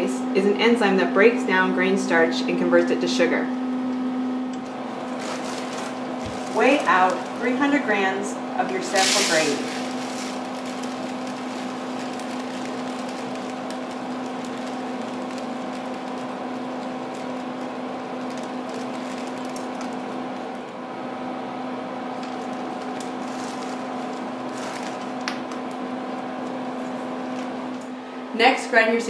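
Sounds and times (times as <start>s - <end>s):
lab equipment hum: 0.0s - 28.8s
grain trickling into plastic dish: 5.1s - 8.1s, 8.7s - 20.5s.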